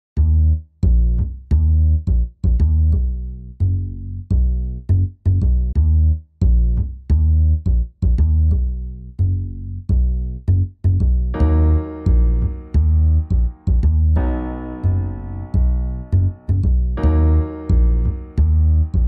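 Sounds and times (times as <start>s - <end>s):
plucked bass line: 0.2s - 19.0s.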